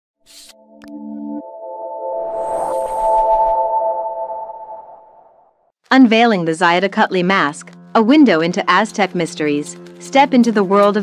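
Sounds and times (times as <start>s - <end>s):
held electronic chord: 0.6s - 5.5s
noisy whoosh: 1.7s - 5.6s
voice-over: 5.9s - 11.0s.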